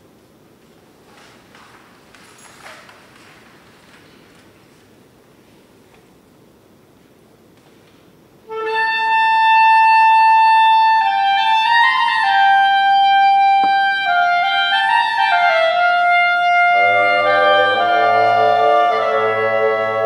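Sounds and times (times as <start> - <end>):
solo clarinet melody: 8.4 - 20.0.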